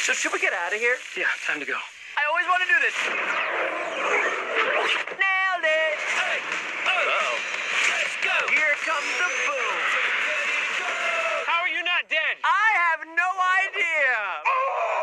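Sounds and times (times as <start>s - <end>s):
excited voices shouting: 9.7s - 11.8s.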